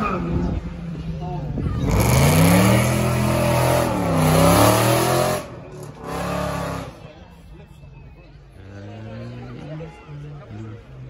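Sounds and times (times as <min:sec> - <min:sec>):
car engine revving hard: 0:01.8 - 0:07.0.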